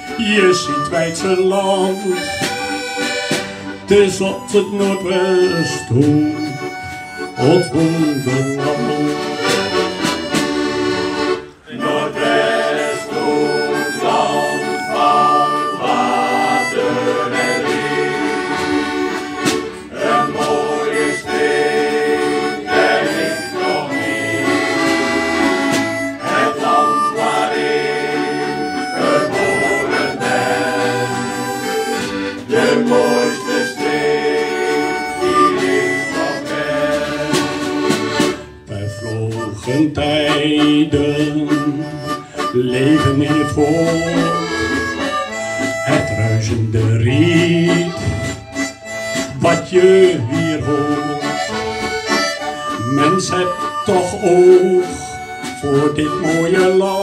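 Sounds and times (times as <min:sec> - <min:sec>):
harmonica: 0:00.0 - 0:57.0
instrumental accompaniment: 0:00.0 - 0:57.0
tin whistle: 0:04.0 - 0:09.6, 0:11.8 - 0:37.2, 0:38.7 - 0:57.0.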